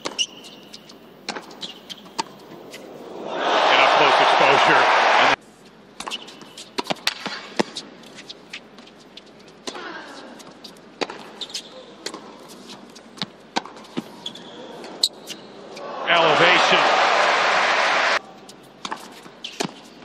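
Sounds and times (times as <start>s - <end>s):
crowd cheering and applauding: 3.1s - 5.4s, 15.8s - 18.2s.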